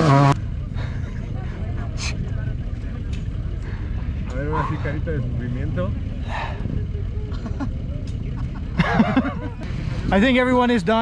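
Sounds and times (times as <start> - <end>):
steady low rumble: 0.0 - 11.0
voices talking: 0.0 - 11.0.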